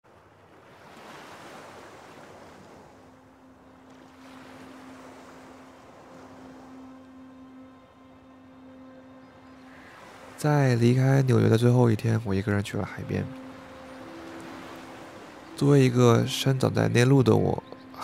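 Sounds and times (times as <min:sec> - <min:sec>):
waves washing onto sand: 0:00.1 - 0:07.0, 0:13.0 - 0:18.0.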